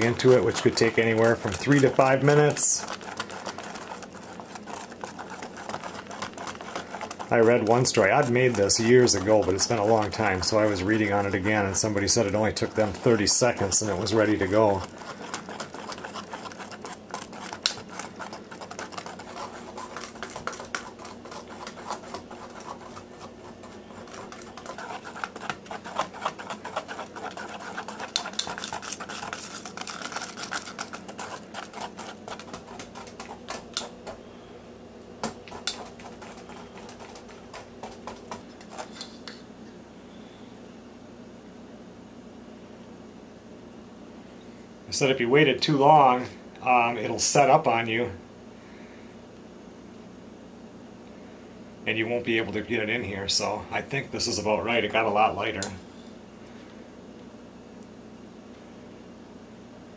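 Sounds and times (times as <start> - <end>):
whisk clicking against steel bowl: 0.0 - 34.2, 35.2 - 39.4.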